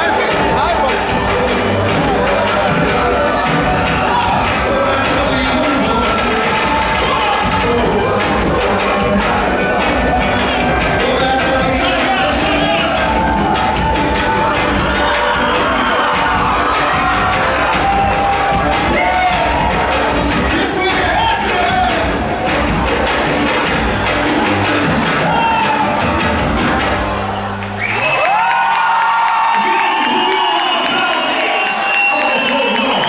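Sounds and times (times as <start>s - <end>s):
lead vocal singing: 0.0s - 23.7s
live band playing: 0.0s - 27.8s
audience cheering and singing: 0.0s - 33.0s.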